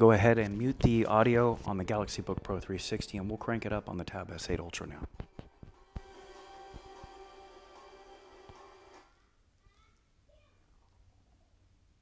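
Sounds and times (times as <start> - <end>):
relaxation music from laptop speakers: 5.2 - 9.1.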